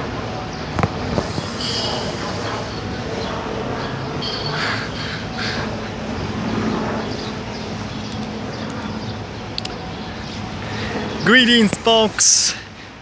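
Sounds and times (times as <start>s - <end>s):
city noise: 0.0s - 13.0s
birds squawking: 0.6s - 13.0s.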